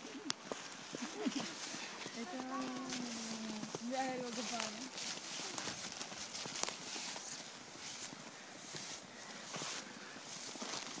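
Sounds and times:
footsteps crunching through snow: 0:00.0 - 0:11.0.

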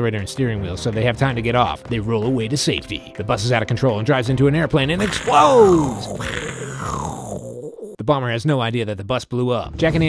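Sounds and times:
person laughing: 0:05.0 - 0:07.1.

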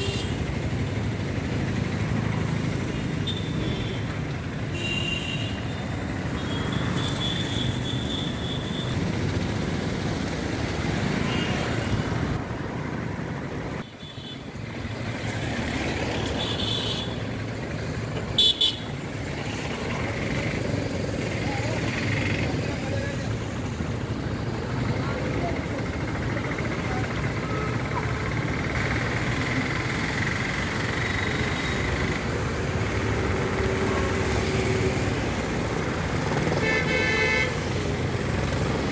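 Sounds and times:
road traffic on wet street: 0:00.0 - 0:38.9
vehicle horns honking: 0:04.7 - 0:05.8, 0:06.4 - 0:09.0, 0:18.4 - 0:18.9, 0:36.4 - 0:37.7.

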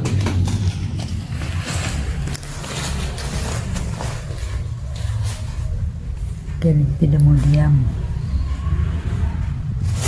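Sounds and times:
nylon fabric rustling and crinkling: 0:00.0 - 0:06.5.

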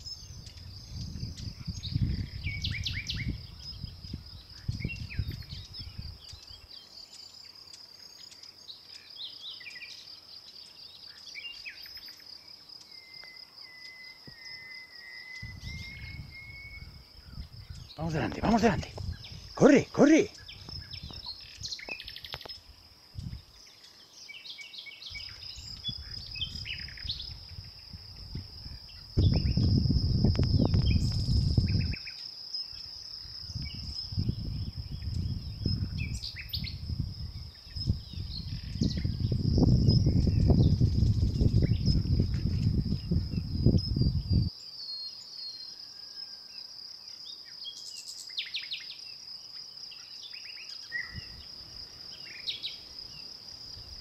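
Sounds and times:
small birds chirping: 0:00.0 - 0:46.2, 0:47.1 - 0:54.0
high insect trill: 0:00.0 - 0:54.0.

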